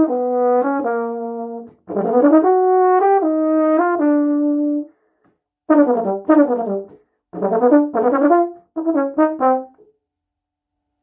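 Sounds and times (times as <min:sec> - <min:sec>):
solo euphonium playing: 0:00.0 - 0:04.9, 0:05.7 - 0:09.8.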